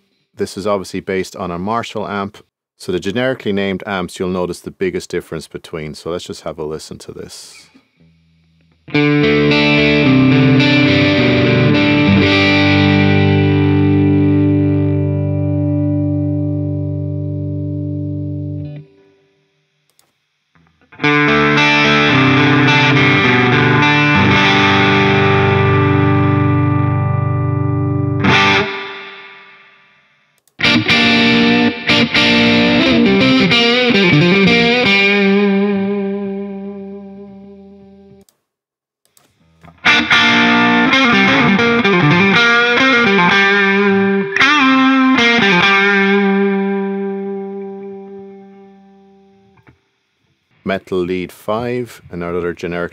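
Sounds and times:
distorted electric guitar chords: 8.0s - 19.3s, 20.5s - 38.2s, 39.4s - 49.8s
electric guitar lead with bent notes: 8.9s - 19.0s, 20.8s - 29.8s, 30.6s - 38.2s, 39.6s - 49.8s.

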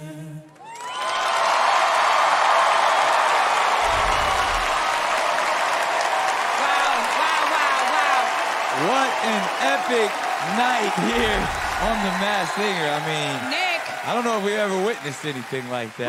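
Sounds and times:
a cappella chord: 0.0s - 0.5s
audience applause and cheering: 0.5s - 16.0s
low rumble: 3.8s - 5.2s.

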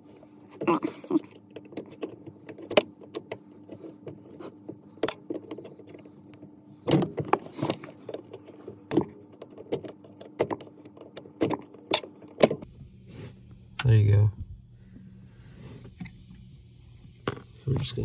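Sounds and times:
faint steady hum: 0.0s - 18.0s.

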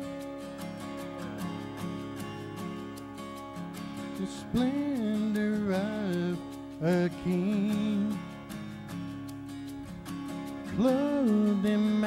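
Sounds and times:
strummed acoustic guitar: 0.0s - 12.0s
person singing: 4.1s - 8.4s, 10.6s - 12.0s.

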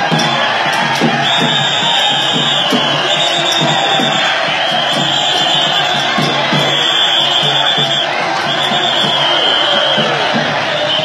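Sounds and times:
dense crowd: 0.0s - 11.0s
drums beating steady rhythm: 0.0s - 11.0s.

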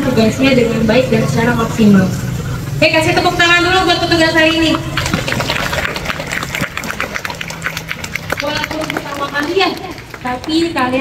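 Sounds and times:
crowd clapping: 4.4s - 11.0s.

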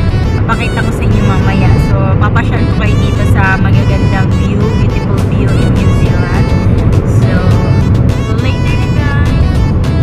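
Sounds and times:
car cabin rumble: 0.0s - 10.0s
music playing: 0.0s - 10.0s
woman singing along: 0.5s - 9.6s.

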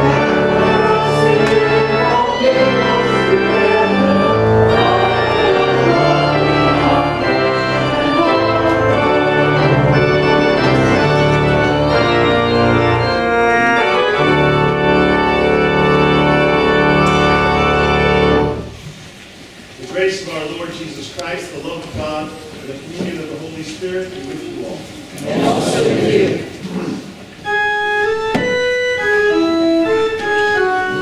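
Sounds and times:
church organ chords: 0.0s - 18.8s, 27.4s - 31.0s.

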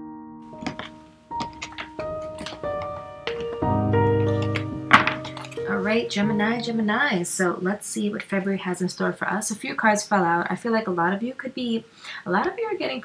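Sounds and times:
soft piano music: 0.0s - 7.2s
cards tapping on wooden floor: 4.3s - 5.6s.

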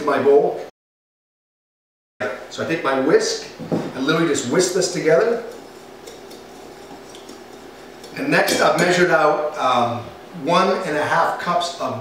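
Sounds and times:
whisk swishing through flour: 4.5s - 8.7s.

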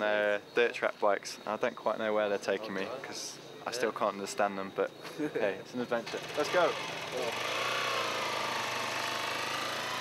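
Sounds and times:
dirt bike engine running: 6.0s - 10.0s.

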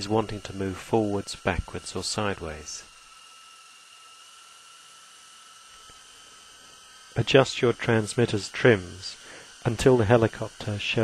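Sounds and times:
model helicopter motor whine: 0.0s - 11.0s.

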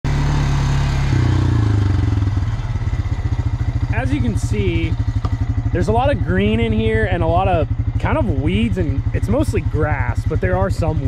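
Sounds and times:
atv engine running: 0.1s - 11.0s.

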